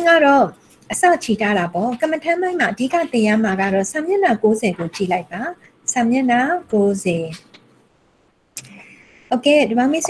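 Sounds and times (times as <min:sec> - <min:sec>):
woman lecturing: 0:00.0 - 0:07.6, 0:08.6 - 0:10.0
faint steady hiss: 0:00.0 - 0:10.0.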